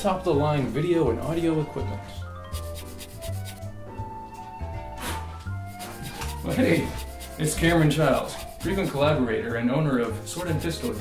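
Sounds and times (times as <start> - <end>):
background music: 0.0 - 11.0
file rasping on metal: 2.6 - 3.6, 5.7 - 9.0, 10.4 - 11.0.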